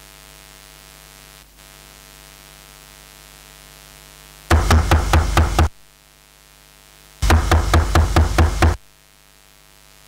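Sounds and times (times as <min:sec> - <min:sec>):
microphone being tapped: 0:04.5 - 0:05.7.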